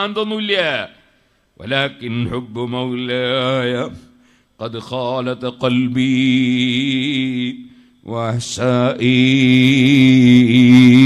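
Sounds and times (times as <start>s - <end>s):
man chanting: 0.0s - 11.0s.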